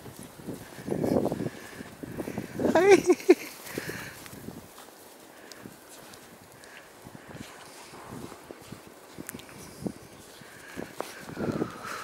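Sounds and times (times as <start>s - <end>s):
footsteps in snow: 0.0s - 12.0s.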